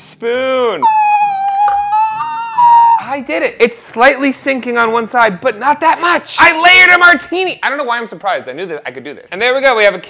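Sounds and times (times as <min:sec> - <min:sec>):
man singing falsetto: 0:00.8 - 0:03.3.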